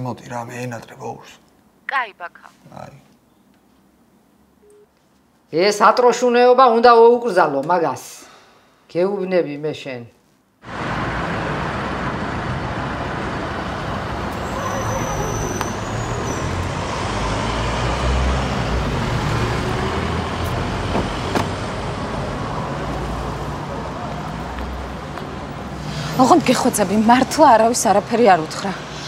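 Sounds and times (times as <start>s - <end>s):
road traffic rumble: 10.6s - 29.0s.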